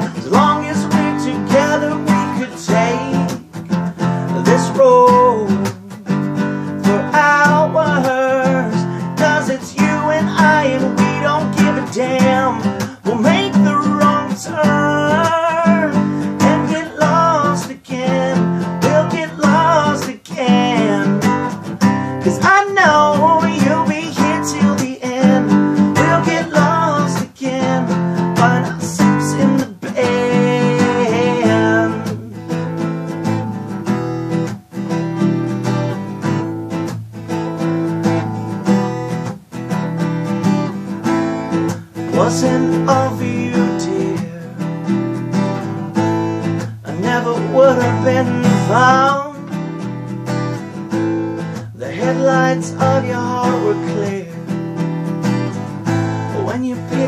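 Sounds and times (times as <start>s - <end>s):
man singing: 0.0s - 34.0s, 40.8s - 49.9s, 50.6s - 57.0s
acoustic guitar strumming: 0.0s - 57.0s.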